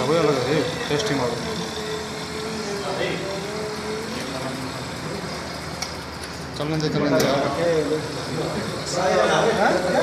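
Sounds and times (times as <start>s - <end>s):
whirr of gears and shafts: 0.0s - 10.0s.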